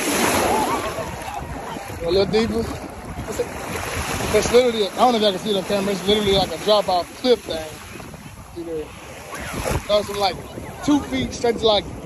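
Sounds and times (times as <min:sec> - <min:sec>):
sea surf washing: 0:00.0 - 0:12.0.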